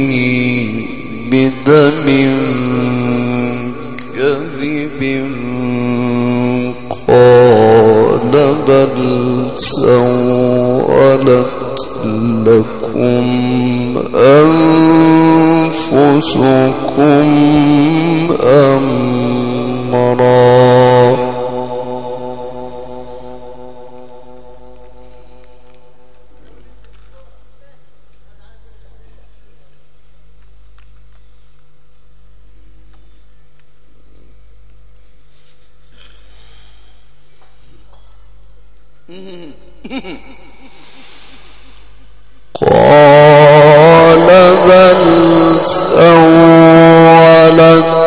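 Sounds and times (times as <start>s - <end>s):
trailing echo: 0.0s - 27.6s, 40.1s - 48.0s
man chanting through a microphone: 0.0s - 29.8s, 42.5s - 48.0s.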